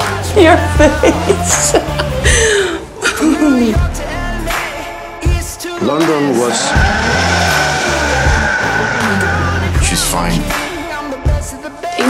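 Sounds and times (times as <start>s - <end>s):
song bass line: 6.5s - 10.6s.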